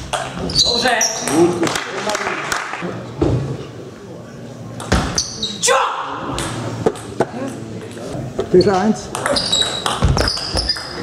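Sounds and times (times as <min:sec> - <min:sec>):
player shouting: 0:05.6 - 0:06.2
table tennis ball hitting paddles: 0:09.1 - 0:11.0.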